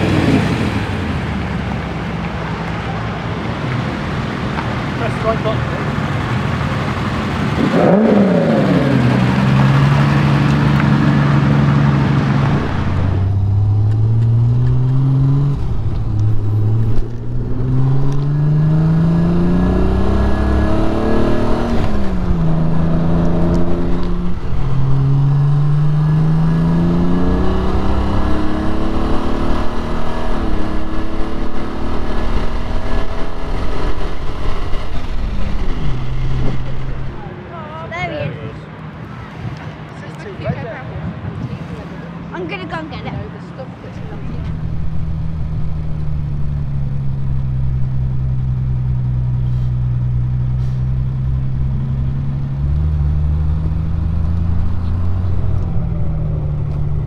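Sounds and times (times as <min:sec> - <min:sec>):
car engine accelerating: 0:00.0 - 0:37.4, 0:41.3 - 0:57.0.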